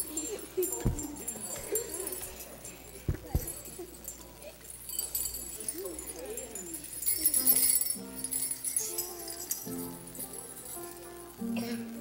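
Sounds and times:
handheld bells jingling: 0.0 - 11.4
microphone knocks: 0.8 - 1.2, 3.1 - 3.6.

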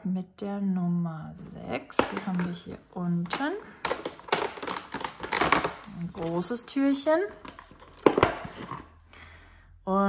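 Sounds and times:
plastic and cardboard rustle: 3.3 - 6.6, 7.2 - 9.0.

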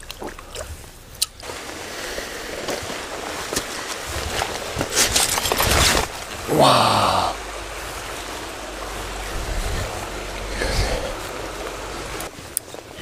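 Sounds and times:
water splashing from wading: 0.0 - 3.4
boots scraping on stones: 1.5 - 7.0.

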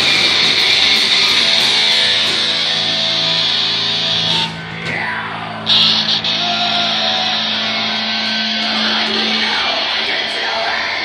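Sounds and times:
distorted electric guitar: 0.0 - 11.0
heavy metal band playing live: 0.0 - 11.0.

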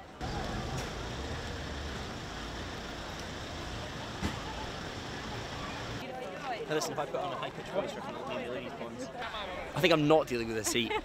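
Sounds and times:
faint distant voices: 0.0 - 9.7.

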